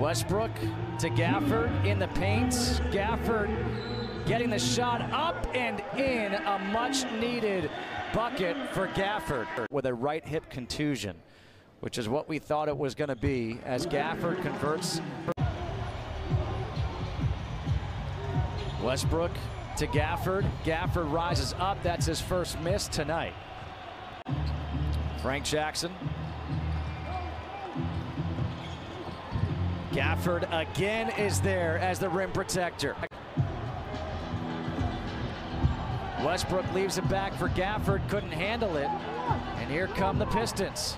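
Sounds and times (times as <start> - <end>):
low background music: 0.0 - 6.8, 33.2 - 40.9
arena background music: 0.0 - 9.5, 13.8 - 40.9
crowd noise: 0.0 - 9.7, 13.5 - 40.9.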